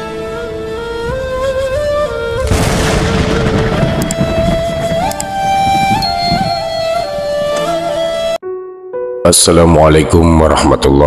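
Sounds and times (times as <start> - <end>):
held flute-like note: 0.0 - 8.4.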